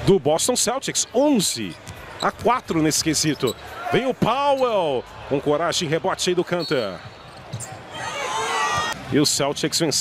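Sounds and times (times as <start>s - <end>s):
sneaker squeaks: 1.4s - 3.8s, 6.6s - 8.0s.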